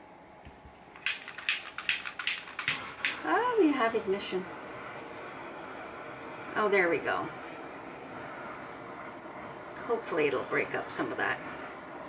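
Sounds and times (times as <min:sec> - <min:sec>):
butane torch click and hiss: 0:00.9 - 0:12.0.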